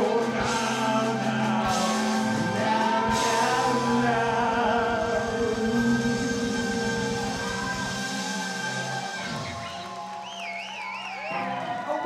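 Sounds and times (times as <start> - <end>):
person singing: 0.0 - 9.4
live rock band playing: 0.0 - 10.6.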